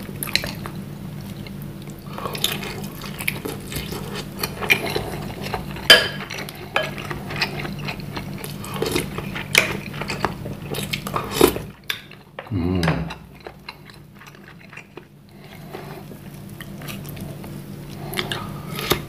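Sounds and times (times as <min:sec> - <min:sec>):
chewing: 0:00.1 - 0:19.0.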